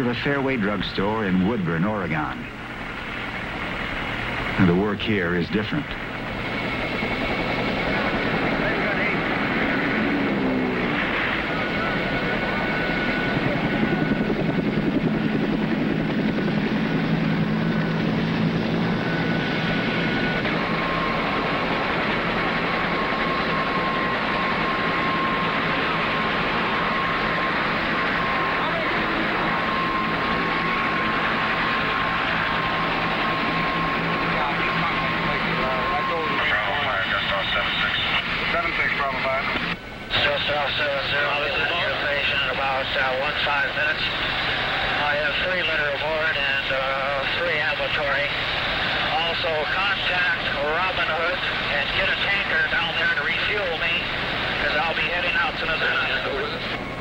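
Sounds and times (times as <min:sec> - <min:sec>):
helicopter running with high whine: 0:00.0 - 0:57.0.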